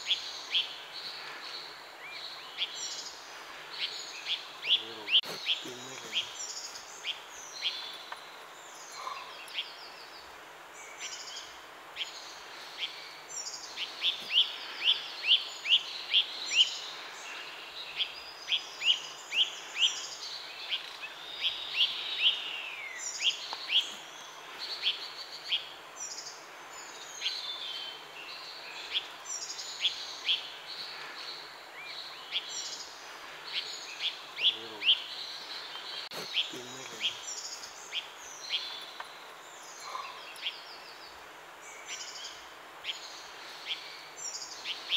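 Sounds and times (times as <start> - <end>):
background hiss: 0.0 - 44.9
small birds chirping and singing: 0.0 - 44.9.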